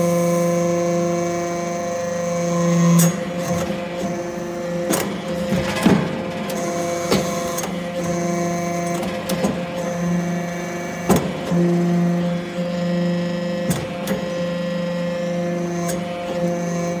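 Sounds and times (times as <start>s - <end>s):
hydraulic press machine hum: 0.0s - 17.0s.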